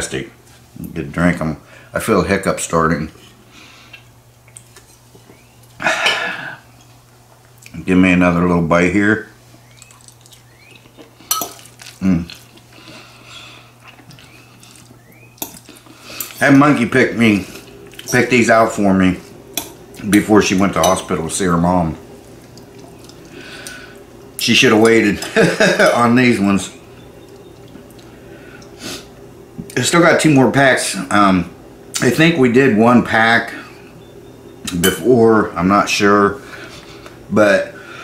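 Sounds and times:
man eating noodles: 9.8 - 16.4
rough throat noise: 11.9 - 12.5.

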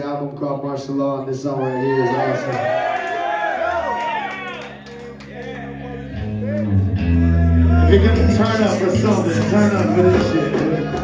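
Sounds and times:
deep bass notes: 5.0 - 11.0.

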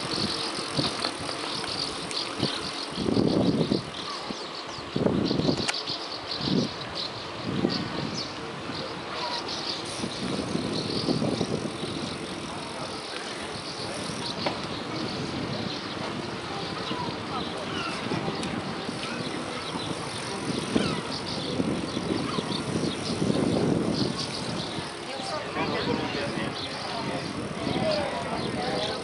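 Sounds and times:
bicycle riding over paving: 0.0 - 5.9, 6.5 - 29.0
bicycle rattles and clicks: 0.0 - 29.0
people's voices: 0.0 - 29.0.

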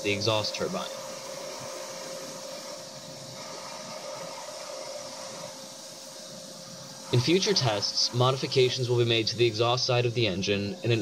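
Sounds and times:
vacuum blowing air rushing hiss: 0.0 - 11.0.

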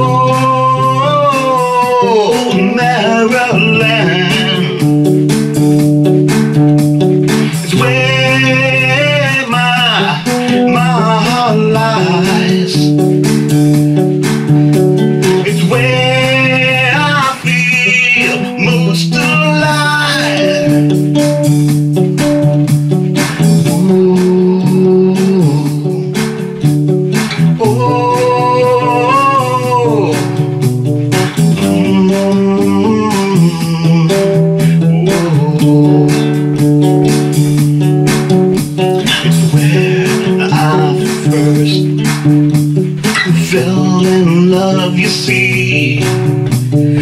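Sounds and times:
bending melodic line: 0.0 - 47.0
guitar strumming: 0.0 - 47.0.

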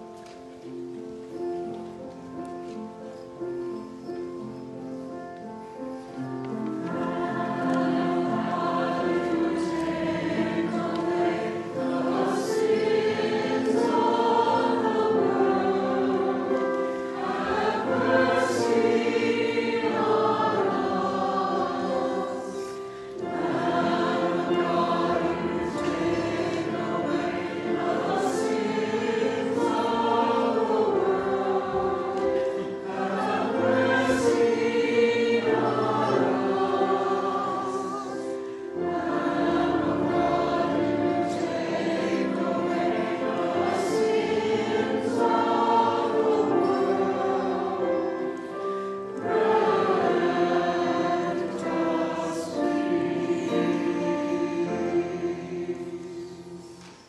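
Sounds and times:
church choir singing: 0.0 - 57.0
singers breathing: 22.7 - 23.2, 38.2 - 38.8.

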